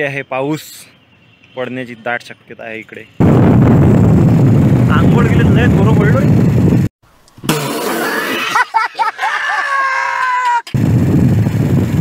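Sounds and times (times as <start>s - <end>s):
man talking: 1.6s - 3.2s, 4.9s - 6.3s
wind rumble on microphone: 3.2s - 6.9s, 10.8s - 12.0s.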